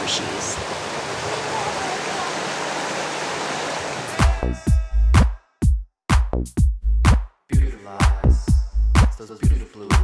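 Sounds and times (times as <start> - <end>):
rushing outdoor noise: 0.0 - 4.4
electronic dance music: 4.1 - 10.0.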